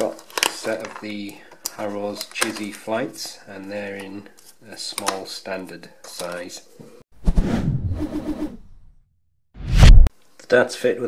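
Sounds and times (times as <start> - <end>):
sudden hit sound effect: 9.6 - 10.1.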